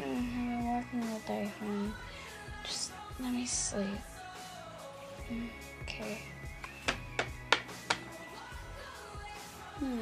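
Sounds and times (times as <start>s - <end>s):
background music: 0.0s - 10.0s
plastic toy tapping on surface: 6.6s - 8.0s.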